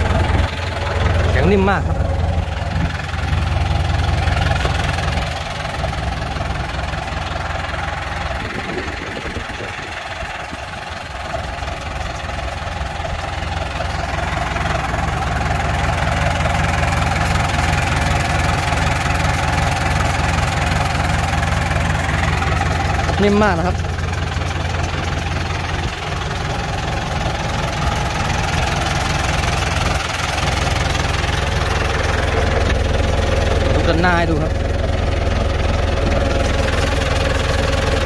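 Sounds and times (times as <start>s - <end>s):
tractor diesel engine idling: 0.0s - 38.0s.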